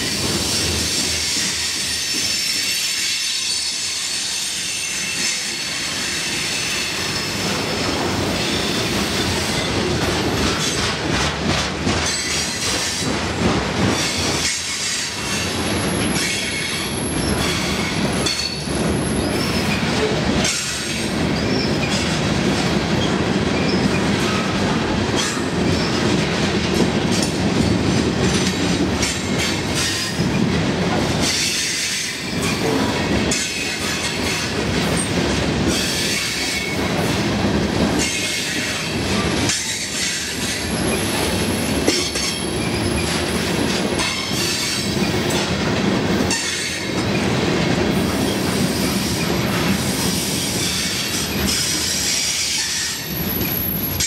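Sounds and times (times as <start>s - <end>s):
train wheels rumbling on rails: 0.0s - 54.0s.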